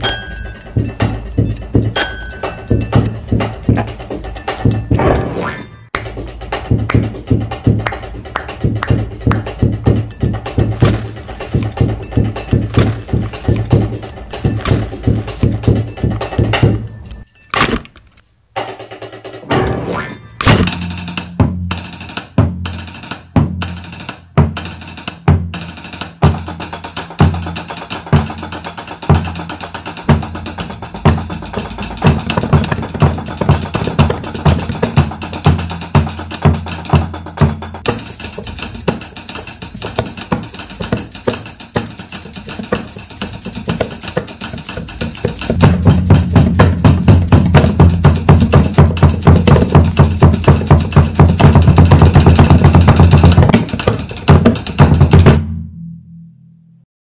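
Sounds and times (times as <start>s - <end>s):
dense high rattle: 0.0s - 5.2s, 10.0s - 18.2s
percussion ensemble playing a beat: 0.0s - 5.3s, 6.0s - 17.3s, 20.5s - 55.4s.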